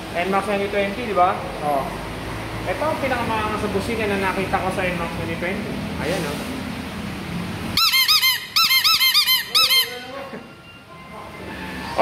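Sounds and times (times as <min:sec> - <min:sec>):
rubber bulb horn honking: 0:07.8 - 0:10.3.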